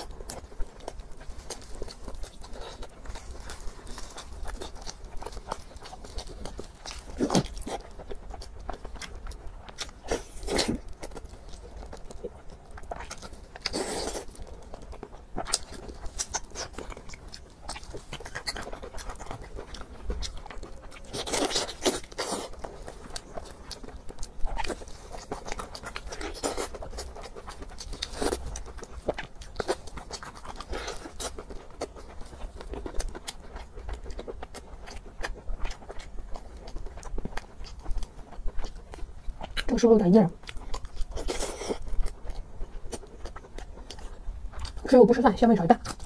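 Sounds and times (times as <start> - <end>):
wet chewing and lip-smacking: 0.0 - 46.0.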